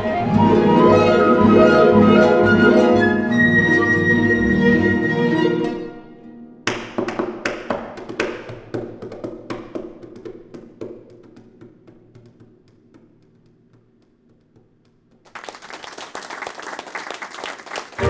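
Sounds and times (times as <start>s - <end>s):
flute long high note: 0.0s - 5.8s
chamber ensemble classical music: 0.0s - 6.6s.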